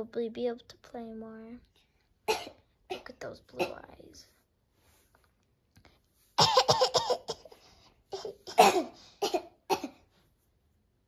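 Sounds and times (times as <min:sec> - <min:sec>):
child coughing: 0:02.3 - 0:04.0, 0:06.4 - 0:10.1.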